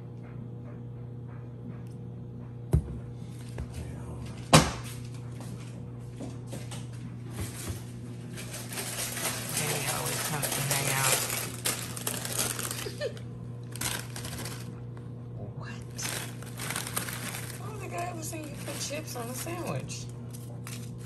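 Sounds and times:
chip bag crinkling: 0:07.4 - 0:14.8, 0:15.9 - 0:21.0.

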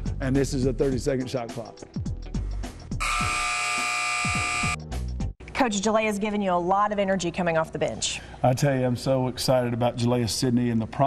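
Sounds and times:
shot-clock buzzer long buzz: 0:03.0 - 0:04.8.

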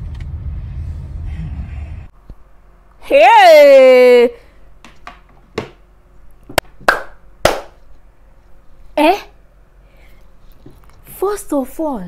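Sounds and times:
hand claps: 0:06.6 - 0:07.8.

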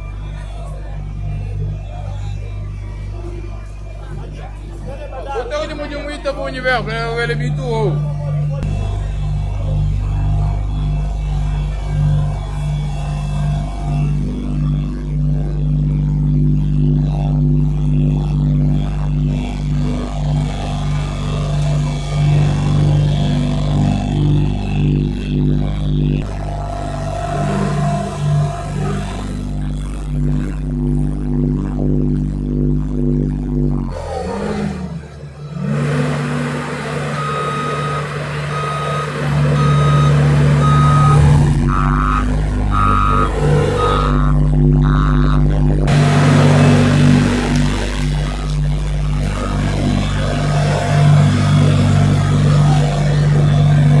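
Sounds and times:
diesel engine running: 0:00.0 - 0:54.0
reversing alarm beeping: 0:26.2 - 0:29.6, 0:34.0 - 0:48.1, 0:49.3 - 0:54.0.

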